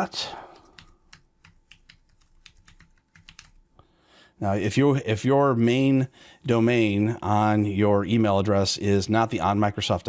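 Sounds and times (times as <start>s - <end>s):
computer keyboard typing: 0.0s - 3.7s.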